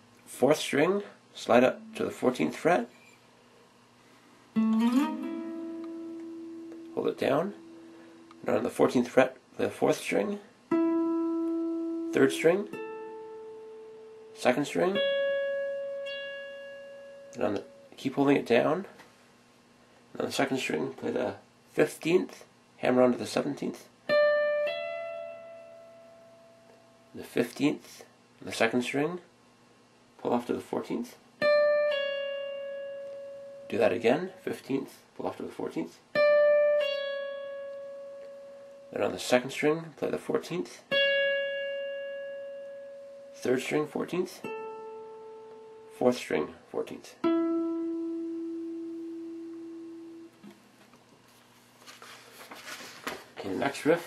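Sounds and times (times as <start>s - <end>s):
electric guitar note ringing: 1.4s - 3.2s, 4.6s - 8.8s, 10.7s - 18.0s, 24.1s - 27.2s, 31.4s - 33.9s, 36.2s - 39.2s, 40.9s - 46.0s, 47.2s - 50.6s.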